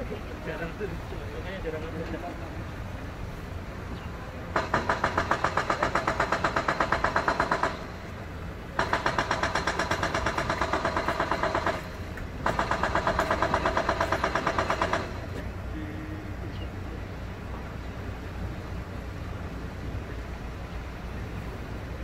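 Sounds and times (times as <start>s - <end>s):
low engine rumble: 0.0s - 22.0s
hydraulic rock breaker hammering: 4.6s - 8.0s, 8.8s - 15.4s.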